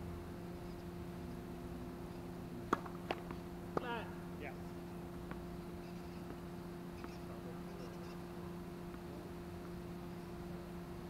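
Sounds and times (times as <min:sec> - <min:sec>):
steady low hum: 0:00.0 - 0:11.0
tennis ball knocks: 0:02.7 - 0:04.0.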